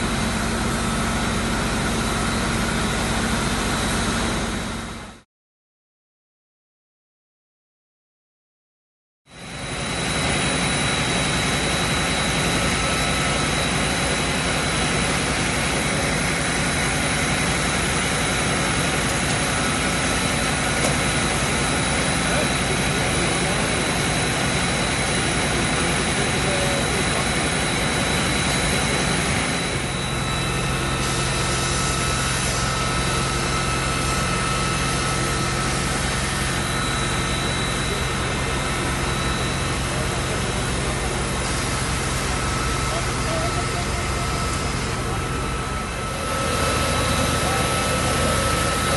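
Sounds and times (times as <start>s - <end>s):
fire truck engines droning: 0.0s - 5.2s, 9.4s - 48.9s
high whine: 9.3s - 48.9s.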